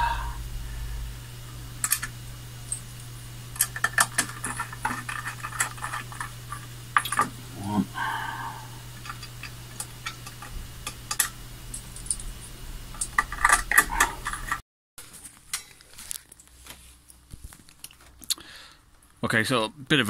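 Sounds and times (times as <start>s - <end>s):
steady low hum: 0.0s - 14.6s
rummaging through loose screws: 3.6s - 7.3s.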